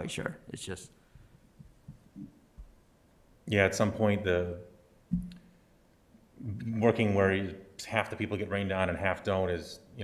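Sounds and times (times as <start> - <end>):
faint low thumps: 5.1 - 5.4.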